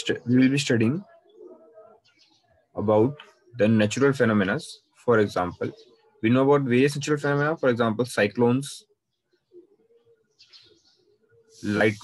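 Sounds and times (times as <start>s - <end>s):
man speaking: 0.0s - 1.1s, 2.8s - 8.9s, 11.6s - 12.0s.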